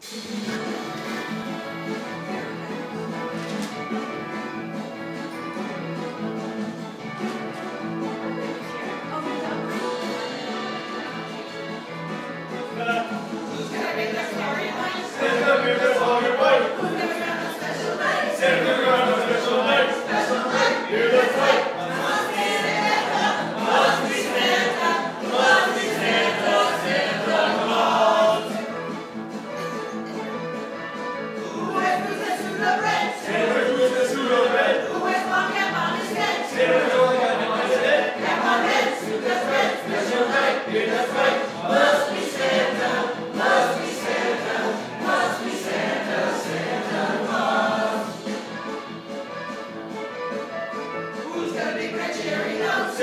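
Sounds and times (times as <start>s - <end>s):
group singing a carol: 12.7s - 29.7s, 31.4s - 48.9s, 51.1s - 53.0s.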